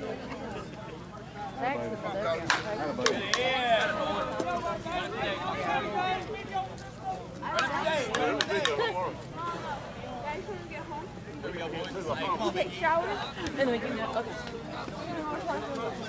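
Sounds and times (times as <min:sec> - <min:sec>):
players and spectators calling out: 0:00.0 - 0:16.0.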